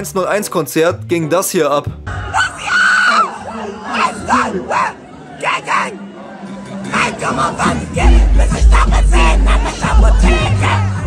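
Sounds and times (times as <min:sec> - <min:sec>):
crowd noise: 0:02.0 - 0:11.0
woman screaming: 0:02.2 - 0:05.0
concert music over sound system: 0:06.0 - 0:11.0.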